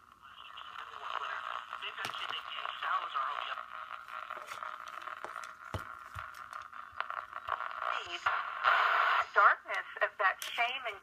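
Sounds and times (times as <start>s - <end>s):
radio static hiss: 0.0s - 11.0s
radio voice talking: 0.3s - 4.0s, 7.7s - 11.0s.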